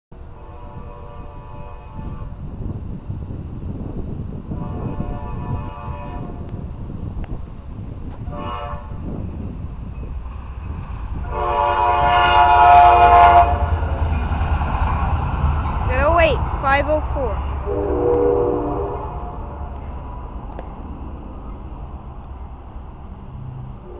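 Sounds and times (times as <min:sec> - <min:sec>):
low rumble of approaching train: 0:00.1 - 0:23.9
locomotive horn blasts: 0:00.3 - 0:02.4, 0:04.6 - 0:06.5, 0:08.3 - 0:09.0, 0:11.3 - 0:13.8, 0:17.6 - 0:19.8.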